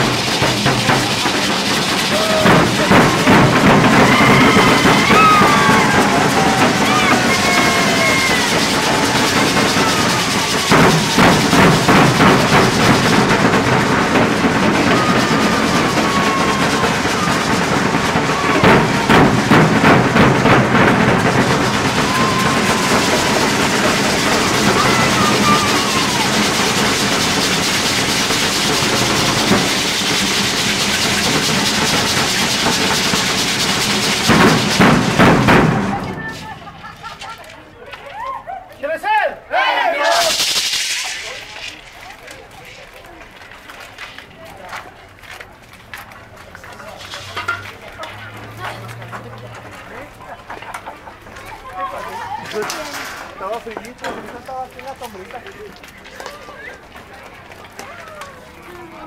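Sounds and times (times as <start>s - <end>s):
bass and snare drums beating: 0.0s - 37.4s, 40.0s - 42.2s
voices calling out: 0.0s - 45.1s, 46.0s - 59.0s.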